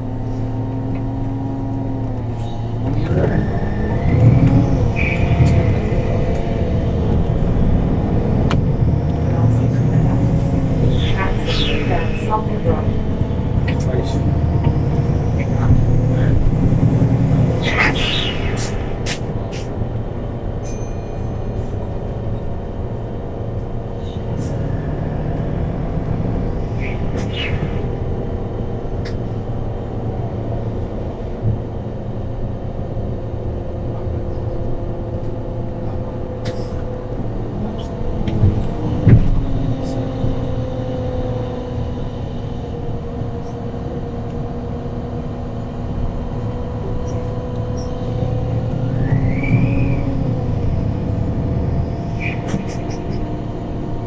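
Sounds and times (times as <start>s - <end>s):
bus engine pulling away: 0.0s - 54.0s.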